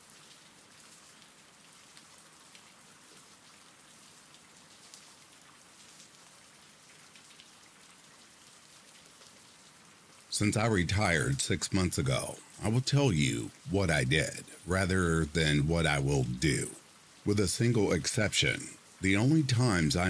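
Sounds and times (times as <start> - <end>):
faint steady rain: 0.0 - 20.0.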